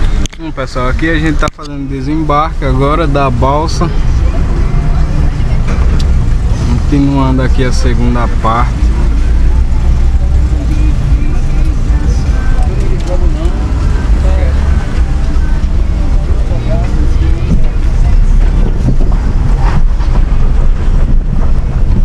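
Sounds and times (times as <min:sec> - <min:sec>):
background voices: 0:00.0 - 0:21.9
engine and tyres on cobblestones: 0:00.0 - 0:22.0.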